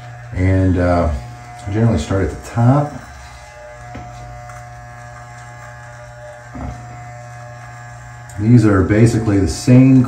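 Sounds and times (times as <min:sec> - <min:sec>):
hair trimmer buzzing: 0:00.0 - 0:10.0.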